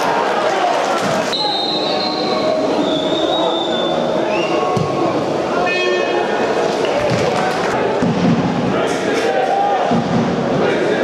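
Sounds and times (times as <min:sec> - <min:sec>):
stadium crowd noise: 0:00.0 - 0:11.0
long high whistles: 0:01.3 - 0:04.7.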